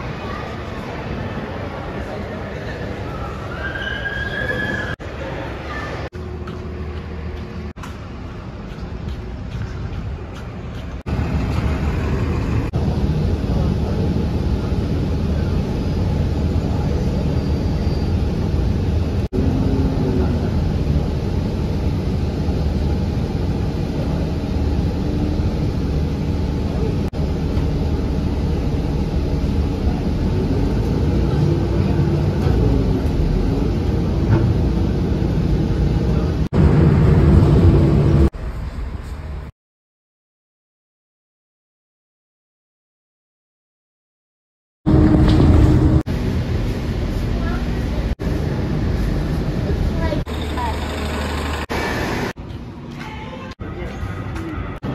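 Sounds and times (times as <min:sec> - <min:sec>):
buses accelerating past: 0:00.0 - 0:39.5, 0:44.9 - 0:52.8.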